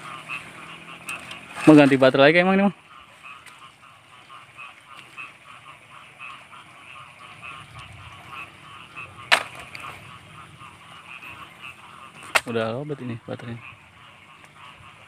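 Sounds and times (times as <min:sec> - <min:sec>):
frogs croaking: 0:00.0 - 0:15.0.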